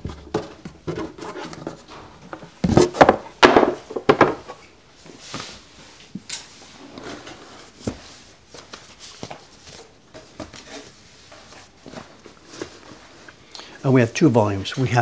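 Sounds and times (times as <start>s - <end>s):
books handled on wooden bench: 0.0s - 13.4s.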